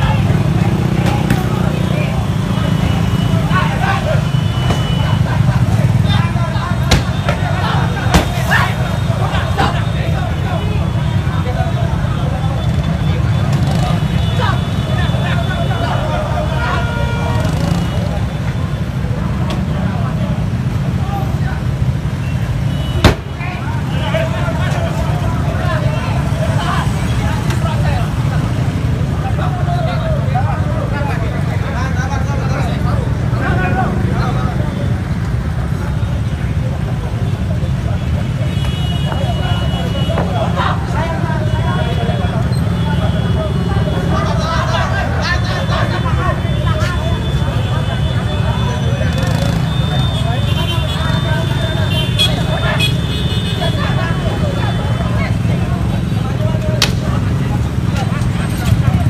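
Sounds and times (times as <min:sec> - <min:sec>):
people's voices: 0:00.0 - 0:59.0
traffic engines rumbling: 0:00.0 - 0:59.0.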